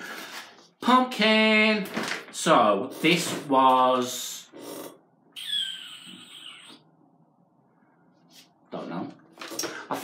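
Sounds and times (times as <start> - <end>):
falling whistle through lips: 5.4 - 6.8.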